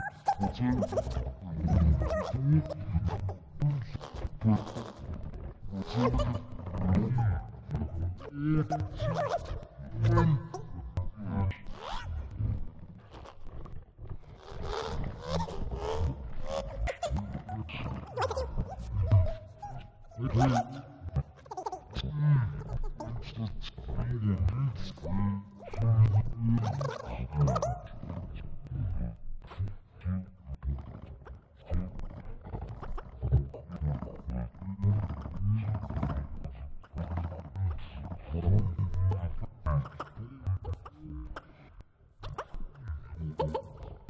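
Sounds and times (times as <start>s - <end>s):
gliding processed vocal fragments: 0.0s - 44.0s
chopped voice fragments: 25.7s - 28.2s, 30.6s - 44.0s.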